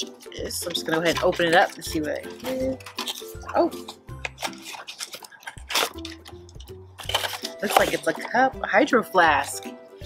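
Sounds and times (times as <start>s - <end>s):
soft background music: 0.0s - 10.0s
tissue paper crinkling: 0.6s - 8.4s.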